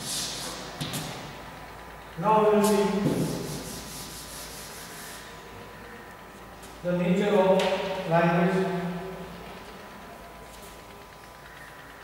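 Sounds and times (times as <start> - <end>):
duster wiping chalkboard: 0.0 - 1.1, 2.5 - 5.5.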